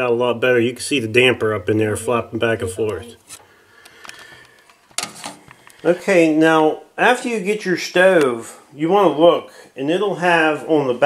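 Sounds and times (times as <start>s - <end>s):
man talking: 0.0s - 3.3s, 5.8s - 11.0s
faint clicks: 3.8s - 4.8s.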